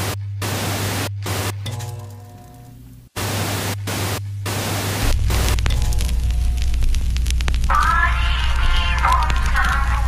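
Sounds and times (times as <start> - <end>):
television static hiss: 0.0 - 1.6, 2.5 - 10.0
steady low hum: 0.0 - 10.0.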